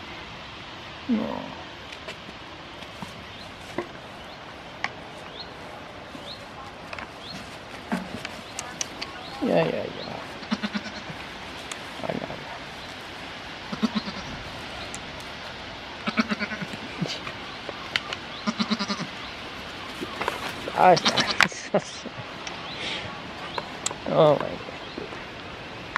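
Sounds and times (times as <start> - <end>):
goats bleating: 10.4 - 11.2, 13.6 - 14.4, 16.0 - 17.3, 18.4 - 19.2, 20.2 - 21.7.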